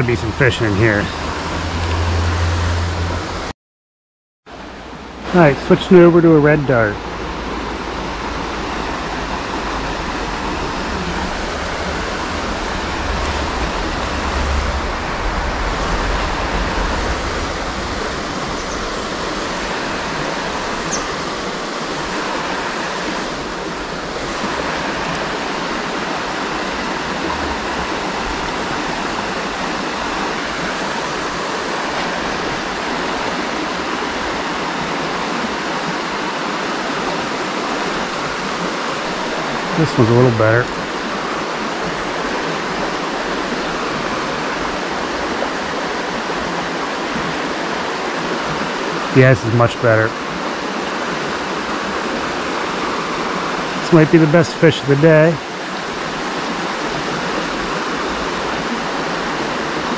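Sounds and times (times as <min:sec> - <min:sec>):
river water rushing: 0:00.0 - 0:03.5, 0:04.5 - 0:59.9
low rumble: 0:09.2 - 0:20.0, 0:27.1 - 0:29.3.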